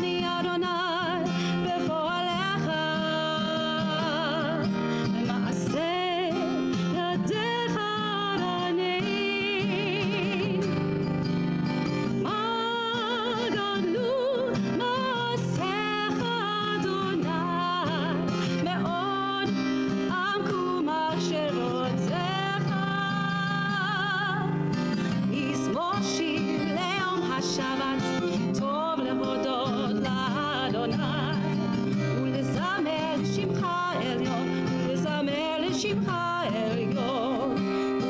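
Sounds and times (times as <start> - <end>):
acoustic guitar: 0.0 - 38.0
woman singing: 0.0 - 38.0.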